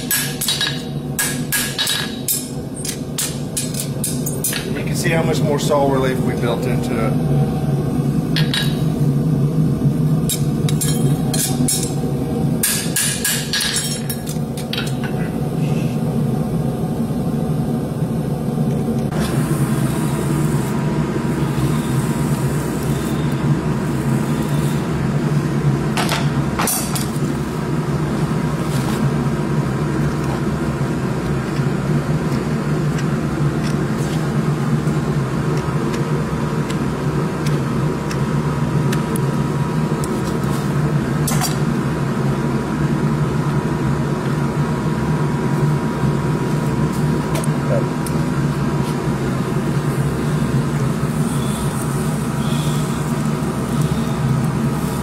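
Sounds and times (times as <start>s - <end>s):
hammer striking metal on anvil: 0.0s - 2.5s, 12.6s - 14.2s
low machine hum: 0.0s - 55.0s.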